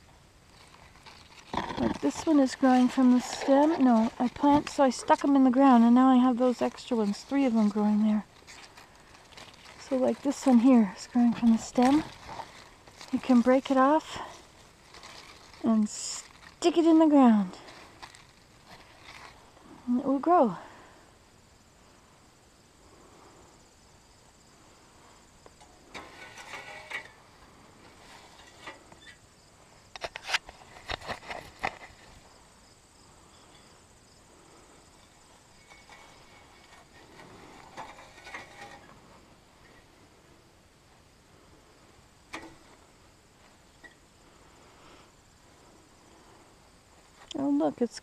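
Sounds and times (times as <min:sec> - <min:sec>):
insects chirring: 0:00.0 - 0:48.0
close rustling: 0:00.5 - 0:19.8, 0:25.8 - 0:32.4, 0:33.2 - 0:40.4.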